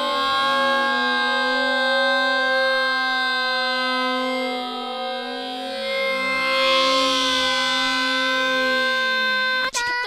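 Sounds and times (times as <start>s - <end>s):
synthesized drone: 0.0s - 10.0s.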